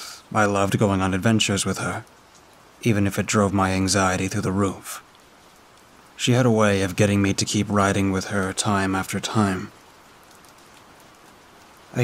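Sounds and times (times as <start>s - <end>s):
faint raindrop ticks: 0.0s - 12.0s
steady rain falling: 0.0s - 12.0s.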